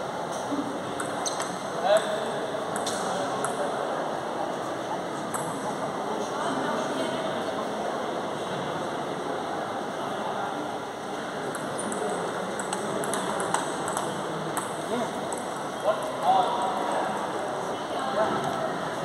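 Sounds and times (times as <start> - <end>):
background chatter in echoing hall: 0.0 - 19.0
ping pong ball clicking: 2.7 - 3.6, 11.5 - 15.5.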